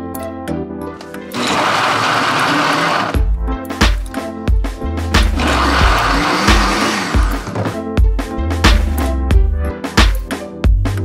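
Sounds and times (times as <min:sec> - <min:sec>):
blender crushing ice: 0:01.0 - 0:03.3, 0:05.2 - 0:07.6.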